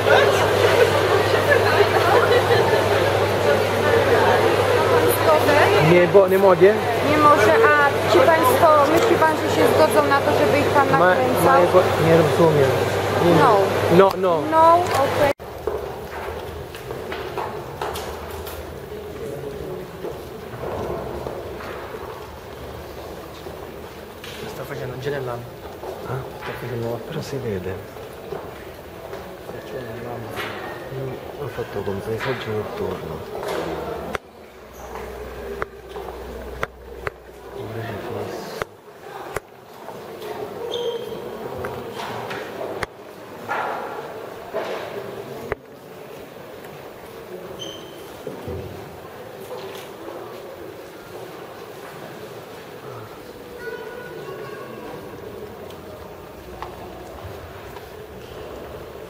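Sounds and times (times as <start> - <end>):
crowd hubbub: 0.0 - 59.0.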